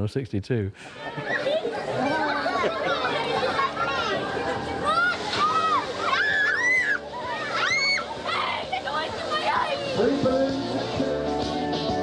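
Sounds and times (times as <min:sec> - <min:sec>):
crowd of children and adults talking: 0:00.8 - 0:12.0
children calling out: 0:01.0 - 0:10.2.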